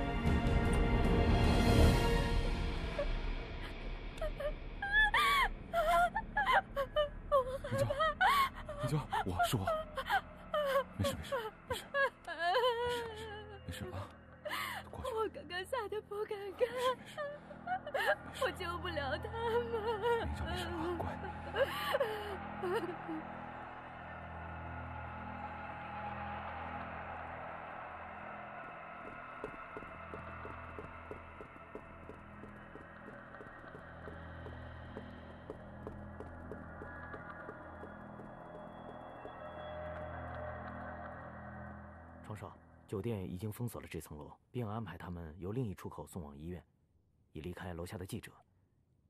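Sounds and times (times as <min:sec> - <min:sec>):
woman sobbing and whimpering: 0:03.0 - 0:23.2.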